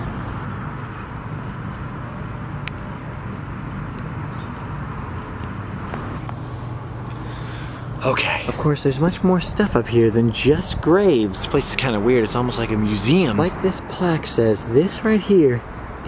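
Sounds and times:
low hum of distant traffic: 0.0 - 16.0.

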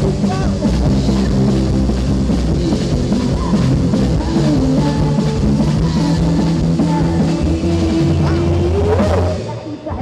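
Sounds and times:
live rock band playing: 0.0 - 9.9.

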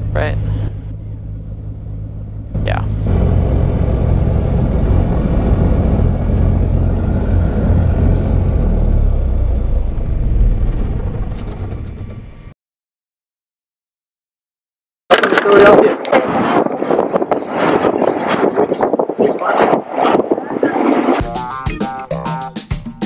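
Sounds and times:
airplane piston engine running: 0.5 - 8.7.

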